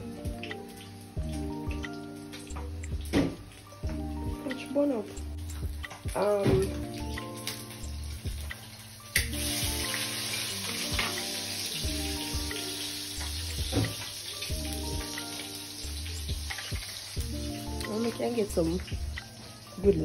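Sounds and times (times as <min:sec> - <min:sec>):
background music with bass beat: 0:00.0 - 0:10.0, 0:11.8 - 0:17.9.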